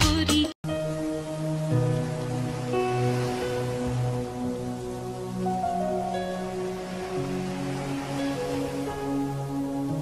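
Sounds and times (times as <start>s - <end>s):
soft instrumental music: 0.0s - 10.0s.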